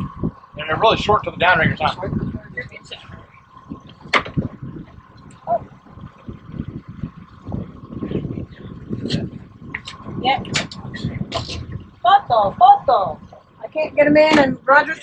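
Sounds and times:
boat motor running: 0.0s - 15.0s
wind rumble on microphone: 0.0s - 15.0s.

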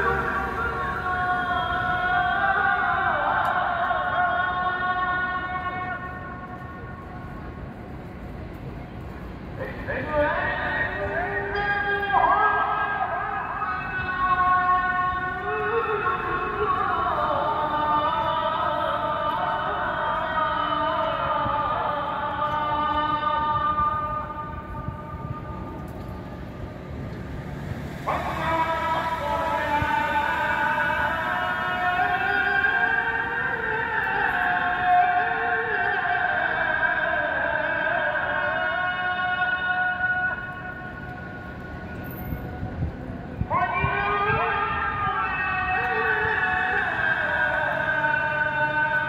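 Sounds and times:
call to prayer over loudspeakers: 0.0s - 49.0s.

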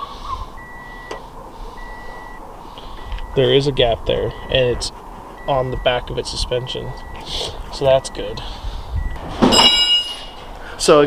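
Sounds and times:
electronic beep: 0.6s - 1.2s, 1.8s - 2.4s.

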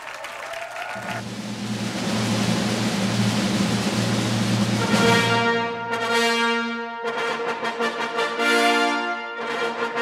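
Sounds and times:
audience applauding: 0.0s - 1.3s
brass music: 1.0s - 10.0s.

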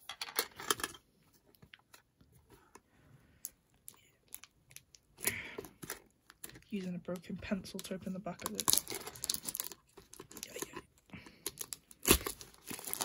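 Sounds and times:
plastic wrap crinkling: 6.2s - 13.0s.

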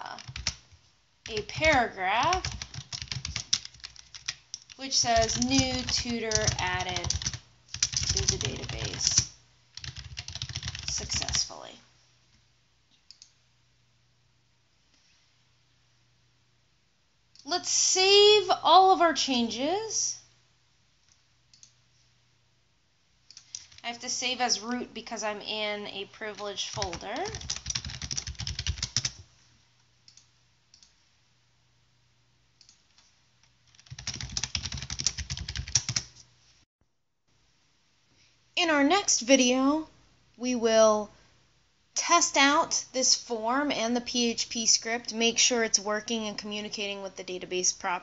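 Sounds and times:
typing on a computer keyboard: 0.2s - 11.5s, 23.3s - 23.8s, 26.3s - 29.2s, 33.7s - 36.2s.

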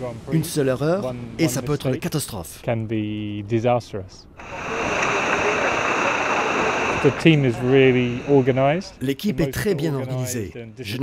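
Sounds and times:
voices: 0.0s - 11.0s
wind: 0.0s - 11.0s
rushing water: 4.4s - 9.0s.

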